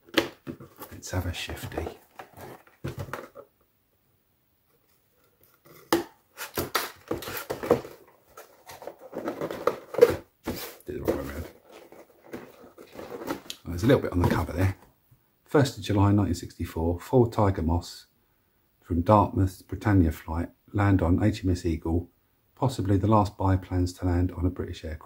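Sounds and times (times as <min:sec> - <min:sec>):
cardboard box rustling: 0:00.0 - 0:03.5, 0:05.2 - 0:14.8
handling of box lid: 0:00.0 - 0:03.5, 0:05.2 - 0:14.6.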